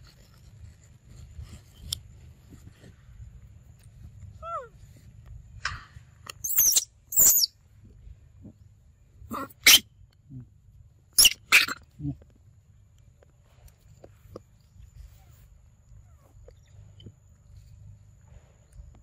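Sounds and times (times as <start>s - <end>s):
monkeys squealing: 6.4s - 7.5s, 9.3s - 9.8s, 11.2s - 11.9s.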